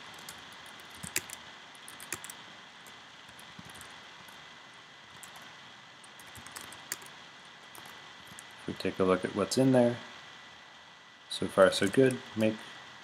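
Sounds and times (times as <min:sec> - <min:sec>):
computer keyboard typing: 0:00.0 - 0:04.4, 0:05.1 - 0:08.5
low hiss: 0:00.0 - 0:13.0.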